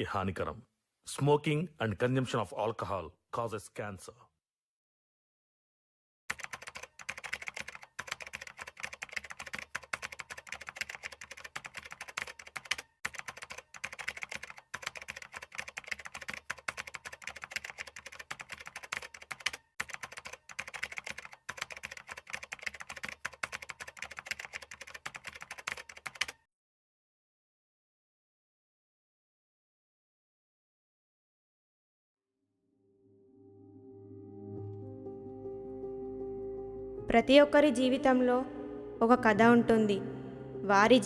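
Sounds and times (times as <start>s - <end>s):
keyboard typing clicks: 6.3s - 26.4s.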